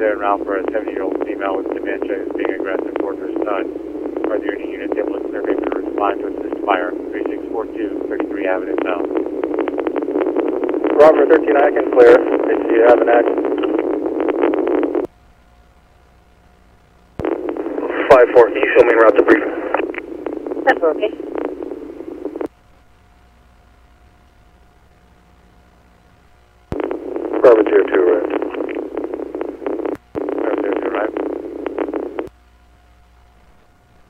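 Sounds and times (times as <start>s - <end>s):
radio static rush: 0.0s - 15.1s, 17.2s - 22.5s, 26.4s - 32.4s
faint radio hiss: 0.0s - 34.0s
faint steady tone: 0.0s - 34.0s
radio click: 0.2s - 15.1s, 17.2s - 22.5s, 26.7s - 32.4s.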